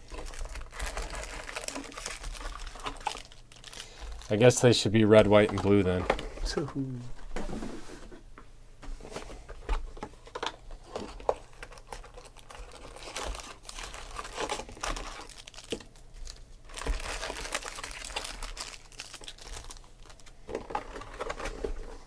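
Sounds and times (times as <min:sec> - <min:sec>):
foil packs crinkling: 0:00.0 - 0:06.2, 0:10.3 - 0:22.0.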